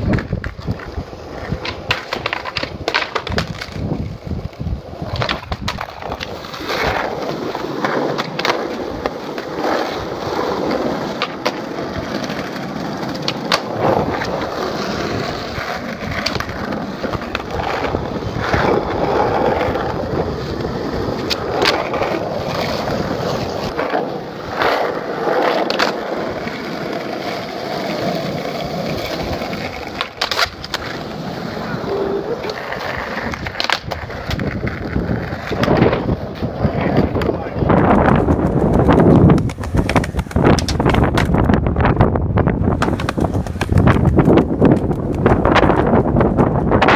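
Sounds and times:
skateboard wheels rolling on asphalt: 0:00.0 - 0:46.9.

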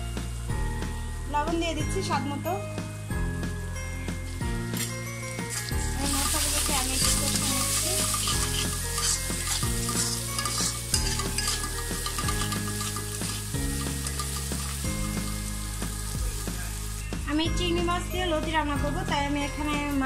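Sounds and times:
food sizzling in hot oil: 0:03.2 - 0:18.0
spatula scraping pan: 0:04.8 - 0:15.5.

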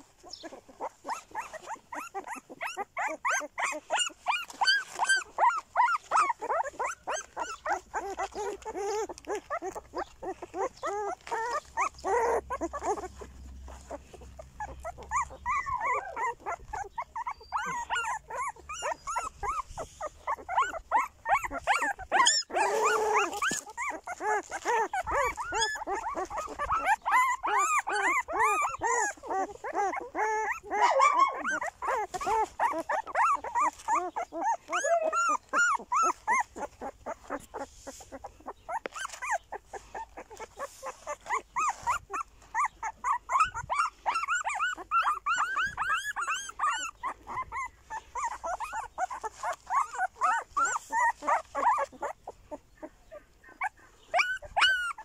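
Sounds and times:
puppies whimpering and squealing: 0:00.0 - 0:55.0.

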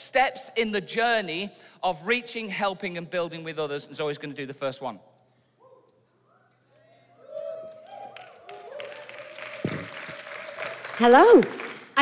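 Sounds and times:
voices cheering: 0:06.8 - 0:11.7
congregation applauding: 0:07.3 - 0:12.0.

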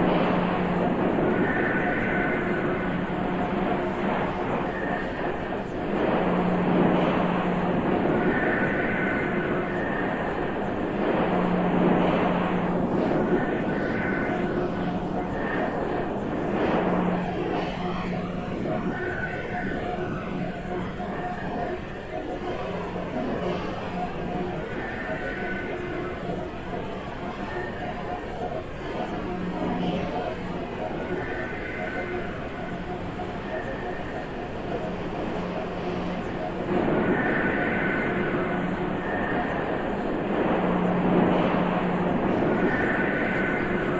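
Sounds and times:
ambient drone music: 0:00.0 - 0:43.9.

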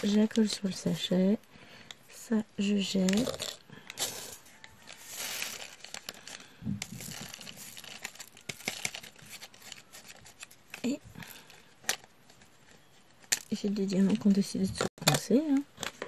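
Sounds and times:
packaging crinkling and rustling: 0:02.7 - 0:14.4.

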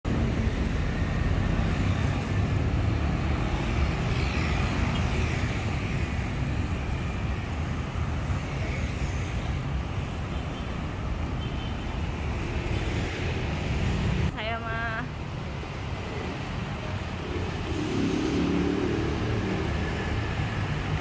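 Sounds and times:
road traffic passing: 0:00.0 - 0:21.0.

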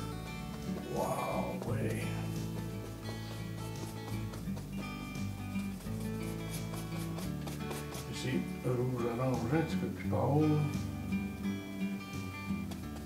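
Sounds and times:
instrumental music with held notes: 0:00.0 - 0:13.0.

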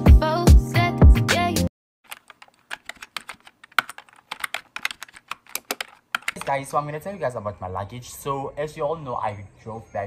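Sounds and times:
keyboard typing clicks: 0:02.1 - 0:06.6.

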